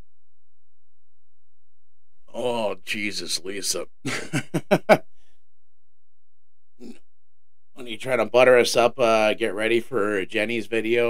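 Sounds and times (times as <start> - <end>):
man laughing: 4.1 - 5.0.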